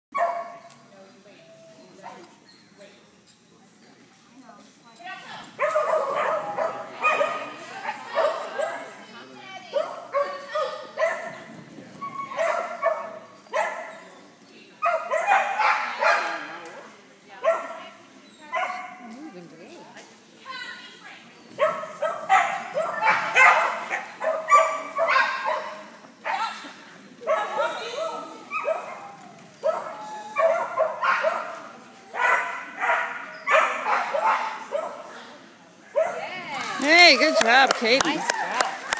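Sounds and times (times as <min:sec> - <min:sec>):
dog barking: 0:00.2 - 0:00.6, 0:05.6 - 0:08.9, 0:09.8 - 0:11.4, 0:12.4 - 0:14.0, 0:14.8 - 0:16.4, 0:17.4 - 0:17.8, 0:21.6 - 0:26.5, 0:29.6 - 0:31.6, 0:32.2 - 0:35.1, 0:36.0 - 0:36.2.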